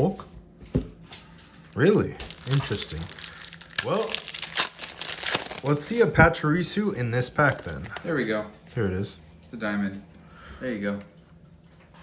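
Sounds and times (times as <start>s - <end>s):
foil wrapper crinkling: 1.7s - 6.1s, 7.4s - 8.0s.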